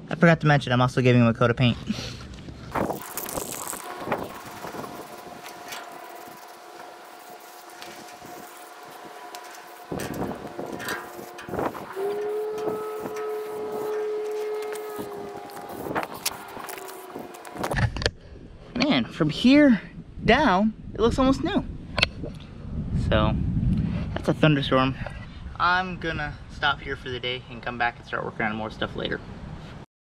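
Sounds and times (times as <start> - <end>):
spray paint can hissing: 2.7 - 17.8.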